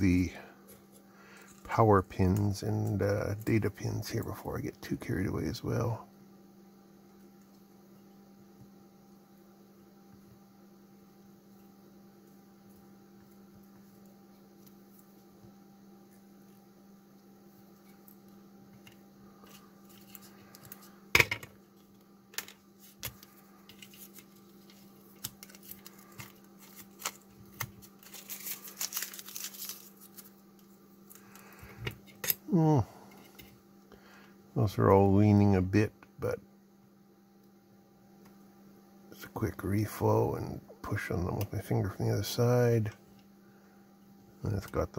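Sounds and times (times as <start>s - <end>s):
tape rustling: 22.8s - 31.5s.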